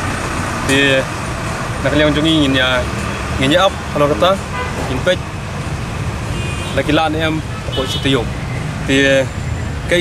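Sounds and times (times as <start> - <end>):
engines idling: 0.0 - 10.0
road traffic rumble: 0.0 - 10.0
man speaking: 0.7 - 1.1, 1.8 - 5.2, 6.8 - 10.0.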